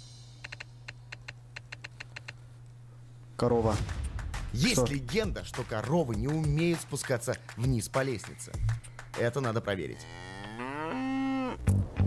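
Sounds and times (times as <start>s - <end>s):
cow mooing: 9.9s - 11.7s.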